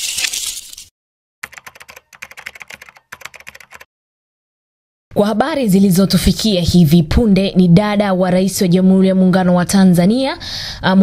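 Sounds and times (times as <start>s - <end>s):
keyboard typing clicks: 1.4s - 3.9s.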